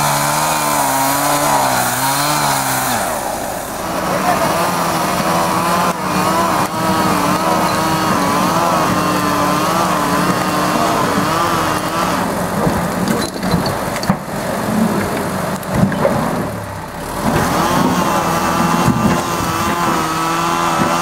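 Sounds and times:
diesel engine pulling: 0.0s - 21.0s
tracks and logs clattering: 0.0s - 21.0s.

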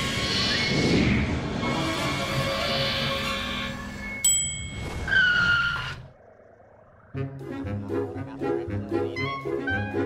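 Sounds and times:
skidding brake screech: 4.9s - 6.1s.

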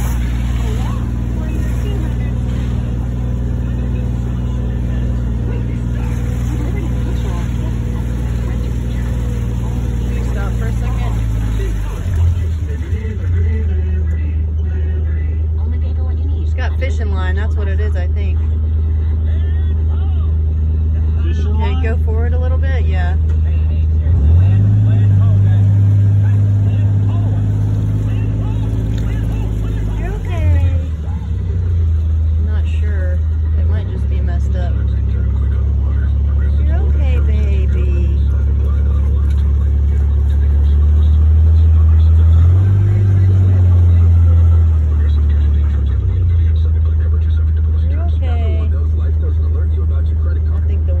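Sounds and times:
car engine humming: 0.0s - 51.0s.

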